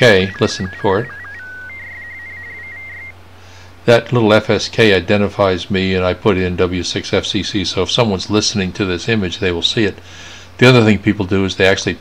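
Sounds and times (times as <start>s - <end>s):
tone flicking between two pitches: 0.0s - 3.1s.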